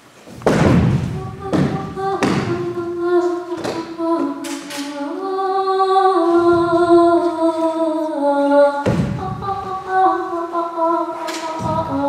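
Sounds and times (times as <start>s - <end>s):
voices humming held notes: 0.7s - 12.0s
heavy ringing thuds: 8.8s - 9.7s.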